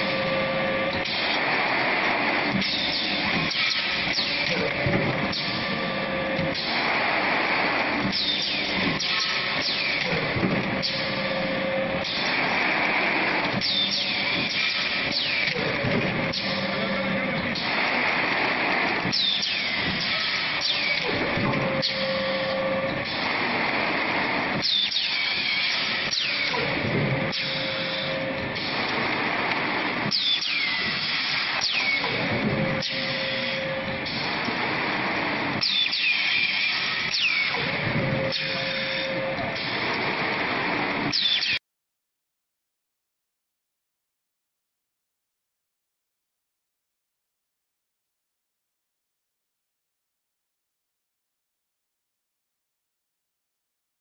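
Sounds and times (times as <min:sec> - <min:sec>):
factory din: 0:00.0 - 0:41.6
forming machine press cycle: 0:00.0 - 0:41.6.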